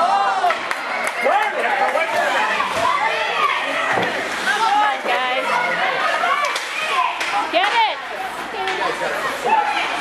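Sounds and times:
crowd talking and calling out: 0.0 - 10.0.

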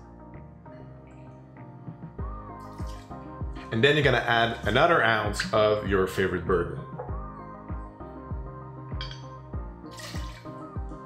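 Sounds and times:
background music with beat: 0.0 - 11.0
liquor splashing into glass: 2.7 - 3.2, 9.9 - 10.6.

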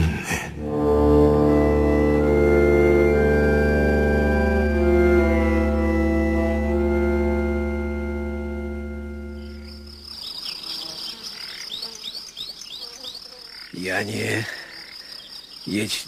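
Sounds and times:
organ chord: 0.6 - 10.0
insects chirping: 8.5 - 16.0.

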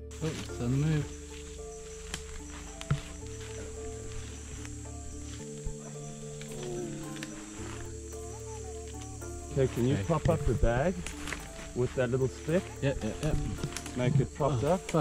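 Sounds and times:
background music with low notes: 0.0 - 15.0
night insects chirping: 0.0 - 15.0.

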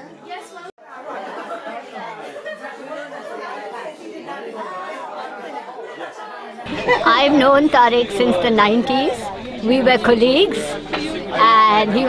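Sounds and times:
chatter of people talking: 0.0 - 12.0.

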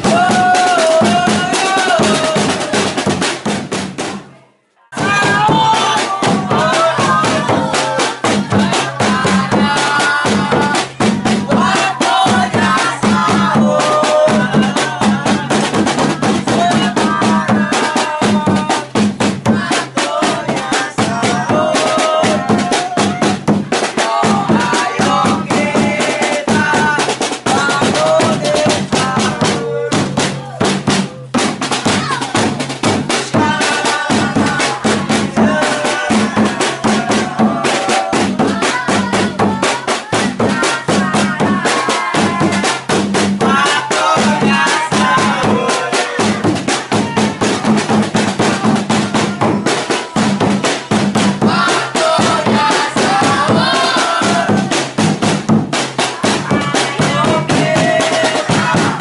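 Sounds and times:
marching drum beating: 0.0 - 4.3, 5.0 - 59.0
people singing: 0.0 - 59.0.

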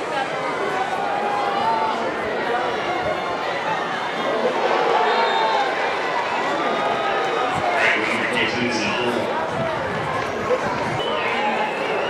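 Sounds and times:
stadium crowd shouting and talking: 0.0 - 12.0.

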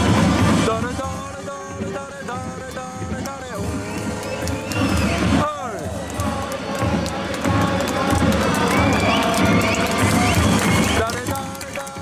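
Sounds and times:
crowd chanting in unison: 0.0 - 12.0
steady drum beat: 0.0 - 12.0.

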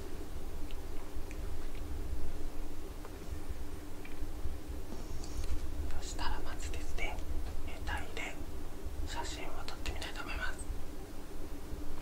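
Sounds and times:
low steady rumble: 0.0 - 12.0
man whispering: 5.9 - 8.4, 9.1 - 10.7.

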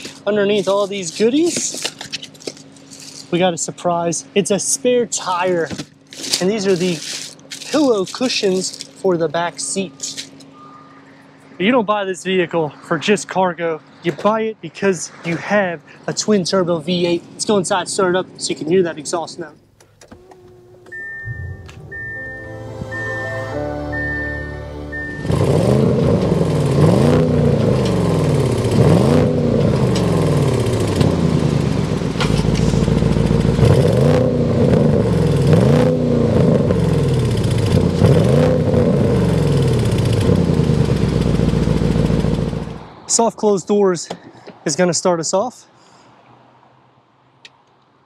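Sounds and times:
car engine starting and revving: 20.0 - 42.9
high chimes: 20.3 - 26.0.

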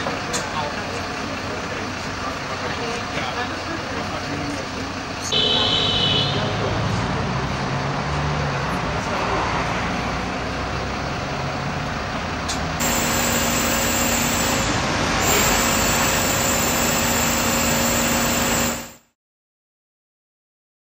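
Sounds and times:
bus engine idling: 0.0 - 18.9
street noise: 0.0 - 19.1
fire engines and pumps running: 0.0 - 19.2
water jet spraying: 12.8 - 18.6.

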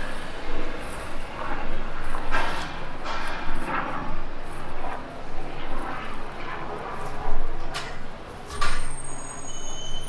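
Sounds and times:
overhead aircraft engine: 0.0 - 10.0
traffic rumble: 0.0 - 10.0.

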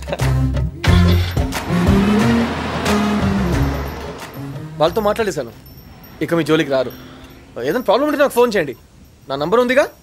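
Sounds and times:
film music: 0.8 - 7.6
jeep engine pulling away: 0.8 - 8.6.

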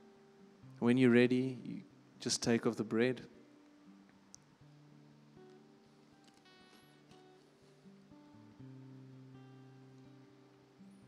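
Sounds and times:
slow acoustic guitar music: 0.0 - 2.2, 2.8 - 11.0.

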